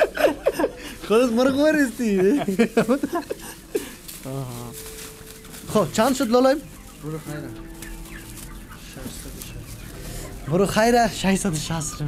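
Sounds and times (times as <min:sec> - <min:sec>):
chickens clucking: 0:00.0 - 0:12.0.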